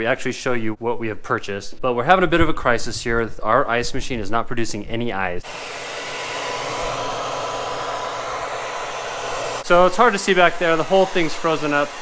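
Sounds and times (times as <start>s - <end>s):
hair dryer running: 5.4s - 12.0s.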